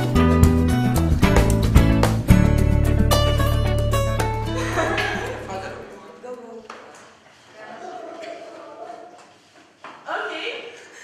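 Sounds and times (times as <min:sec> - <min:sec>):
guitar music: 0:00.0 - 0:05.8
faint indistinct chatter: 0:05.5 - 0:11.0.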